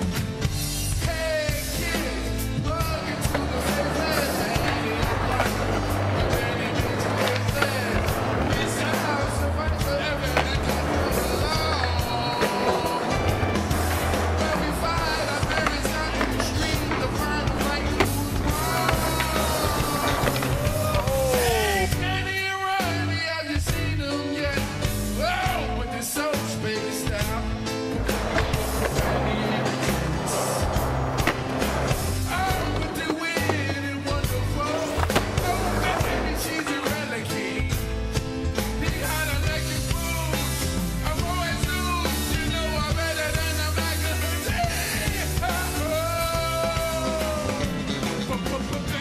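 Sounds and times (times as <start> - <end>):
skateboard wheels rolling on wood: 1.0 - 21.9, 26.5 - 49.0
skateboard clacks: 2.7 - 21.5, 27.9 - 37.4.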